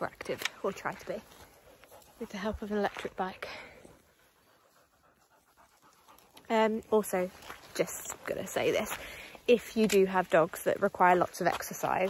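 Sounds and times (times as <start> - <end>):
dog panting: 0.9 - 9.4.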